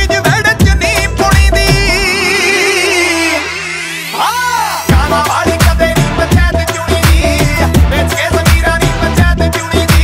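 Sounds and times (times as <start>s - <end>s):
rising swept effect: 1.5s - 5.2s.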